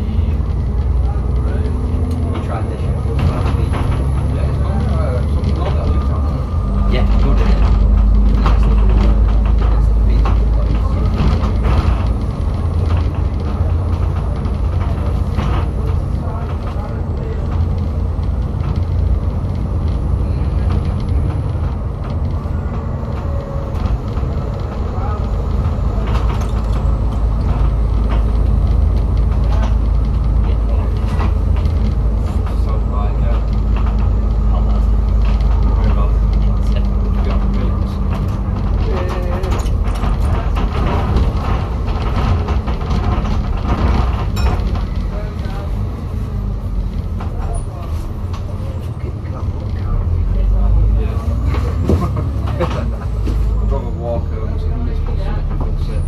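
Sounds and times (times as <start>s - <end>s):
bus engine rumble: 0.0s - 56.0s
rattles and clicks: 0.0s - 56.0s
road noise: 0.0s - 56.0s.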